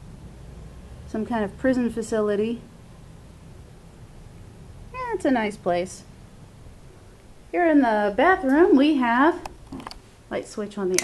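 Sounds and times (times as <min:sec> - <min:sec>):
low background rumble: 0:00.0 - 0:11.0
woman's voice: 0:01.1 - 0:02.7, 0:04.9 - 0:06.1, 0:07.5 - 0:09.5, 0:10.3 - 0:11.0.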